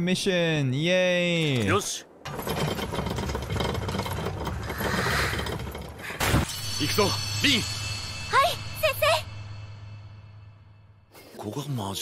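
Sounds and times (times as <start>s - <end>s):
dense crackling clattering noise: 2.3s - 6.9s.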